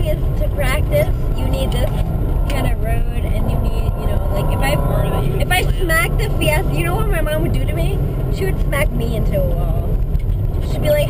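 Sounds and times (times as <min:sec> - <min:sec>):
car engine running: 0:00.0 - 0:11.0
tyre and road noise: 0:00.0 - 0:11.0.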